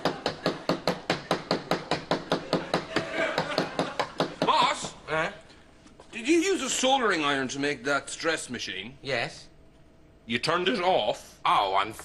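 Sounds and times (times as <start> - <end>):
fist pounding gadget on desk: 0.0 - 5.0.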